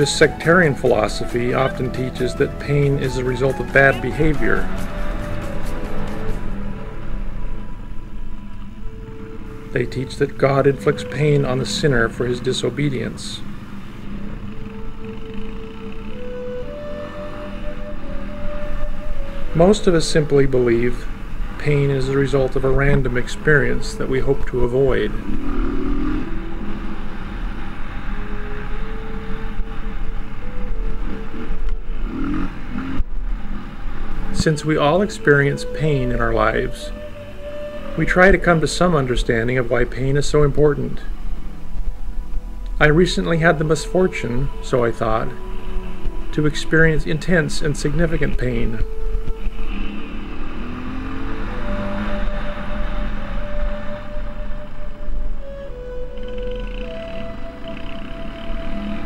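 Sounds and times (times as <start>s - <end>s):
rushing noise: 0.0s - 59.0s
motorcycle engine running: 13.5s - 17.2s.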